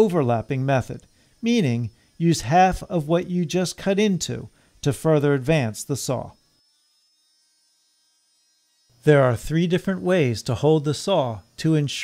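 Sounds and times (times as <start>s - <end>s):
faint electric motor buzz: 0.0s - 12.0s.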